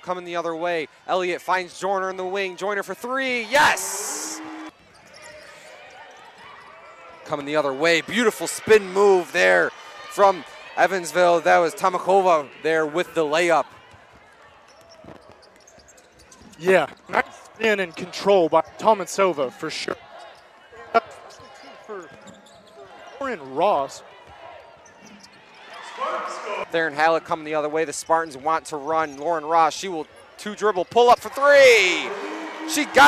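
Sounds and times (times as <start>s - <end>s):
low arena background noise: 0.0s - 33.0s
crowd murmur: 3.3s - 4.8s, 31.8s - 33.0s.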